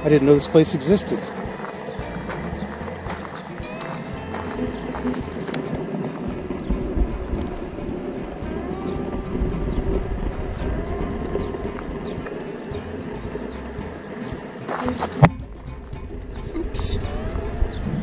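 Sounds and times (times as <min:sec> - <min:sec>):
wind rumbling on microphone: 0:00.0 - 0:18.0
footsteps crunching on pebbles: 0:01.0 - 0:06.3, 0:14.6 - 0:15.5.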